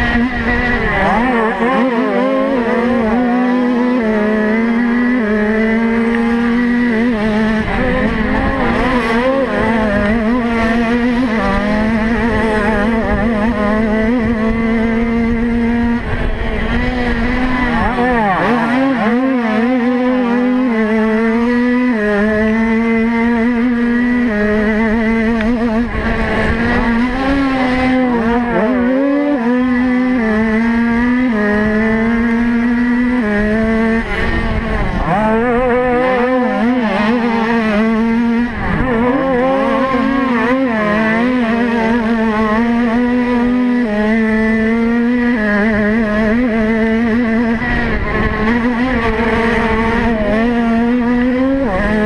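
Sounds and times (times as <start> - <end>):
motocross bike engine revving: 0.0 - 52.0.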